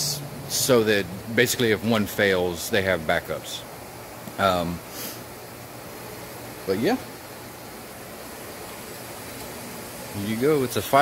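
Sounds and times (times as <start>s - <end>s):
workshop background hiss: 0.0s - 11.0s.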